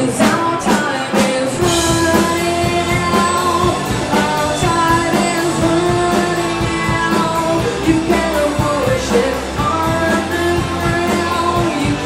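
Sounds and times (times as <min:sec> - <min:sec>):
drum kit hits: 0:00.0 - 0:12.0
electric guitar: 0:00.0 - 0:12.0
rock band playing live: 0:00.0 - 0:12.0
woman singing: 0:00.0 - 0:12.0.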